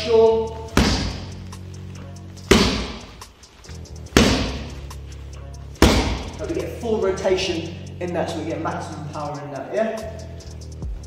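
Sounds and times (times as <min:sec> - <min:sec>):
background music: 0:00.0 - 0:11.0
glove jabs smacking focus mitts: 0:00.7 - 0:01.4, 0:02.5 - 0:03.2, 0:04.2 - 0:04.8, 0:05.8 - 0:06.4.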